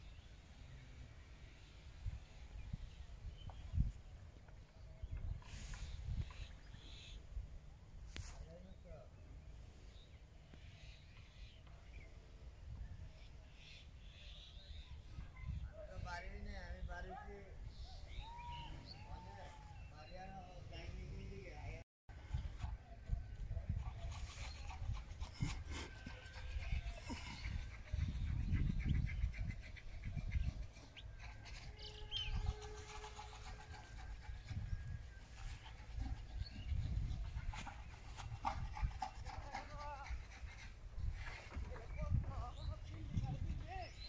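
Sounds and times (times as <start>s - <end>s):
wind gusting on microphone: 1.9s - 7.6s, 14.7s - 21.5s, 22.1s - 44.0s
animal calls: 23.8s - 41.4s.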